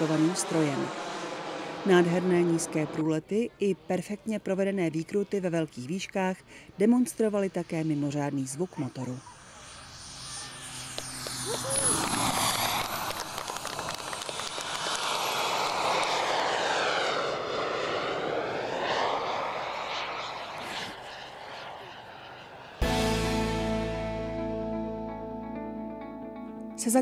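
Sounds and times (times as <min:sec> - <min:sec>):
model jet turbine flying past: 0:00.0 - 0:03.2, 0:07.0 - 0:22.8.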